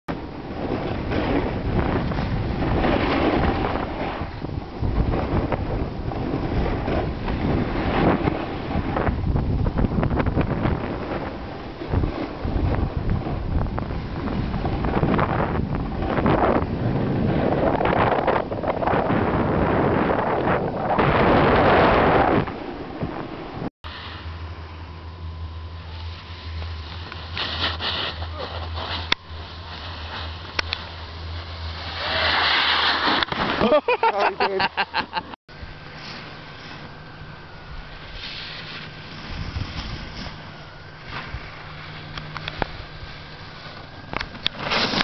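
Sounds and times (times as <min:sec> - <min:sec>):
wind buffeting microphone: 0:00.1 - 0:23.7, 0:38.9 - 0:44.6
skis scraping on snow: 0:00.5 - 0:04.4, 0:25.9 - 0:34.0, 0:35.8 - 0:36.9, 0:37.8 - 0:45.0.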